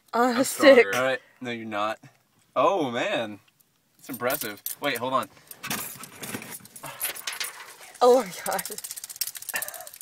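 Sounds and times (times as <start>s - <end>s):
keys jangling: 4.0s - 10.0s.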